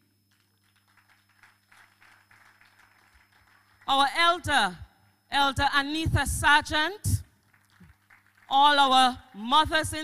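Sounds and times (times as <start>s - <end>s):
low electrical hum: 0.0s - 10.0s
faint scattered applause: 0.3s - 3.9s, 7.4s - 8.5s.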